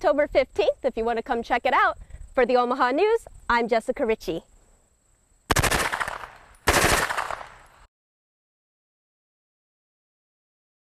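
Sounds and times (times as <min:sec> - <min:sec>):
submachine gun automatic fire: 0:05.5 - 0:07.6.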